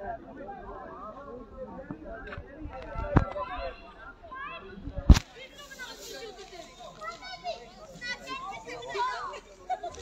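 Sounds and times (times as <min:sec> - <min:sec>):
people talking and calling out: 0:00.0 - 0:10.0
children's high voices: 0:03.4 - 0:09.5.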